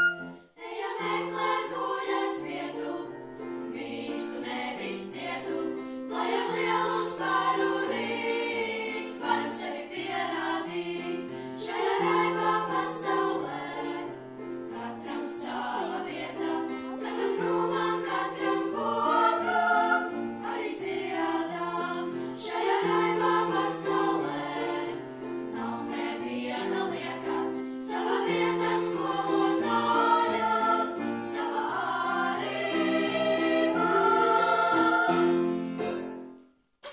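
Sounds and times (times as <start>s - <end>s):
girls choir singing: 0.0s - 35.6s.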